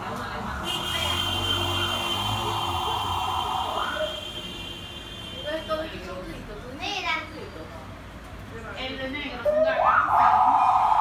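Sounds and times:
high-pitched fan whine: 0.0 - 7.7
rushing air: 1.9 - 4.6.

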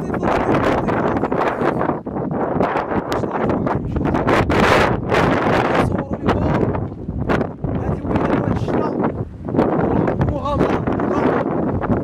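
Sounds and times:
strong gusty wind on microphone: 0.0 - 12.0.

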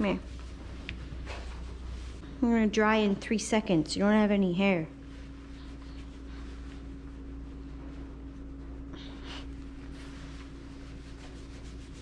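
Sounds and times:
steady low hum: 0.0 - 12.0
towel rubbing wet dog: 9.5 - 12.0.

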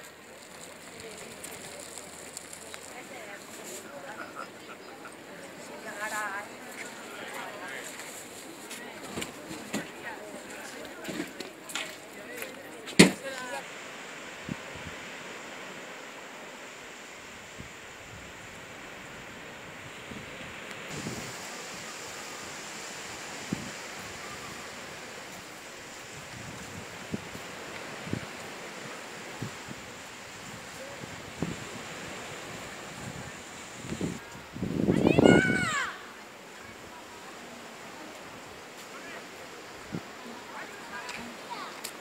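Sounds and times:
small surf washing: 0.0 - 42.0
wind: 0.0 - 42.0.

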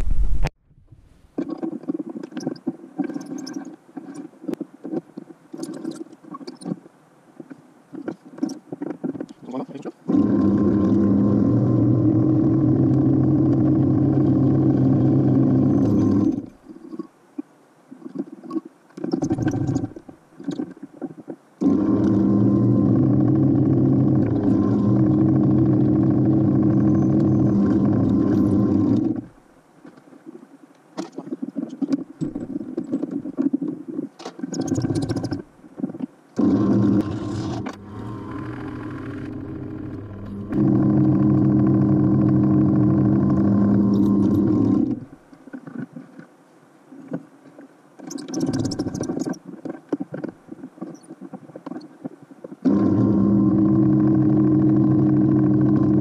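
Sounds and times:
drill press motor humming: 36.4 - 45.0, 52.7 - 56.0.

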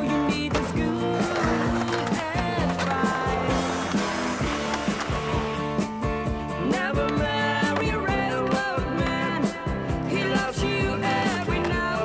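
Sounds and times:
music with singing: 0.0 - 12.0
skateboard wheels rolling on concrete: 0.0 - 12.0.

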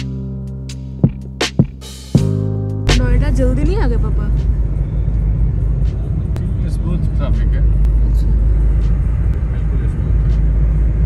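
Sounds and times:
car engine rumble: 0.0 - 11.0
road noise inside car: 3.0 - 11.0.

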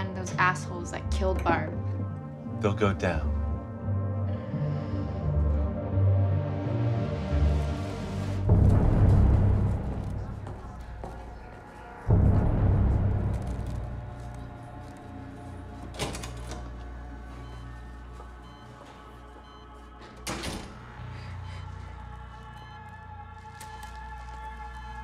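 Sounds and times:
sustained low music: 0.0 - 25.0
sharp door sounds: 20.1 - 20.9.

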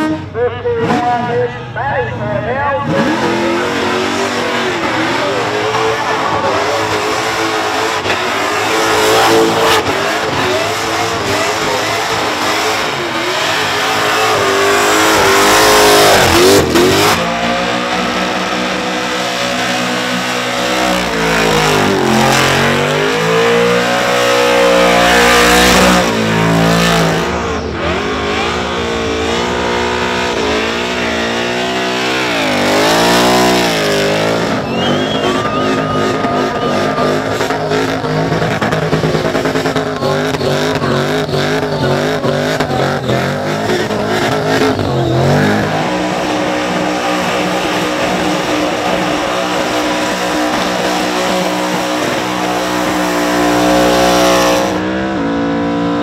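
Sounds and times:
car engines revving hard: 0.0 - 56.0.

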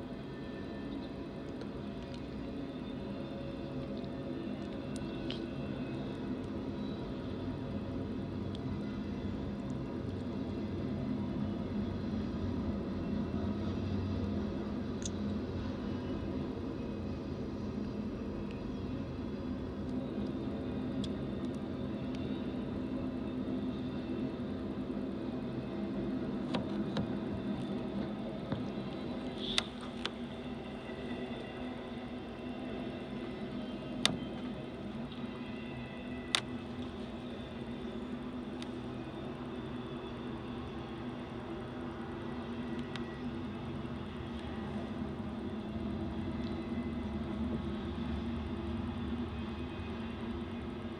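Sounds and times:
low drone: 0.0 - 50.9
train wheels rumbling on rail: 0.0 - 50.9.

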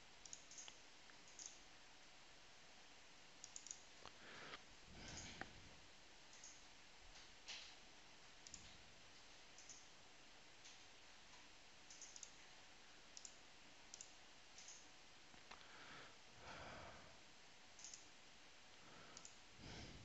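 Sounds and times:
faint computer mouse clicks: 0.2 - 1.6, 3.4 - 4.2, 6.3 - 6.6, 8.4 - 8.8, 9.6 - 9.9, 11.9 - 12.4, 13.1 - 14.9, 17.8 - 18.1, 19.1 - 19.4.

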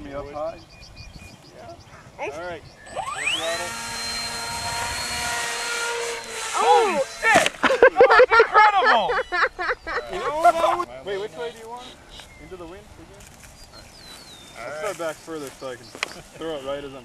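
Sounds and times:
voices: 0.0 - 0.7, 1.3 - 17.0
model plane motor whine: 2.8 - 7.6.

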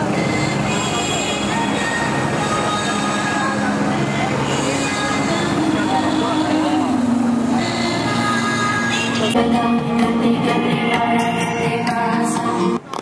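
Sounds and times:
crowd voices: 0.0 - 13.0
low drone of held tones: 2.3 - 12.8.

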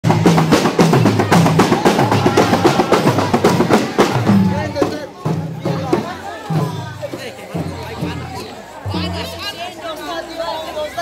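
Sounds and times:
drums played in quick rhythm: 0.0 - 9.6
crowd voices: 0.0 - 11.0.

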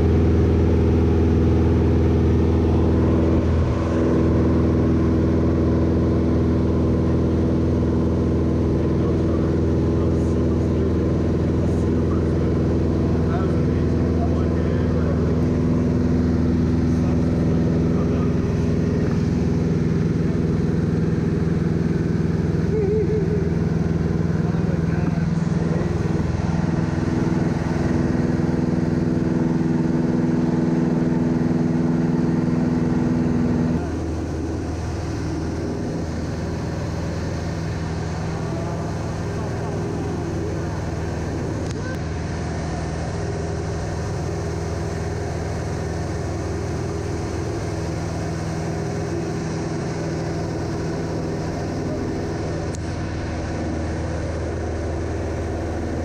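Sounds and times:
light aircraft engine droning: 0.0 - 56.0.

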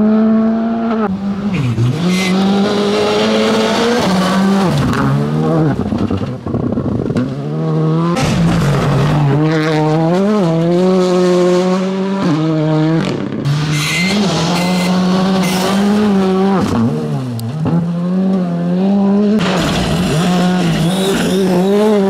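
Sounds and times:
rally car engine revving: 0.0 - 22.0.

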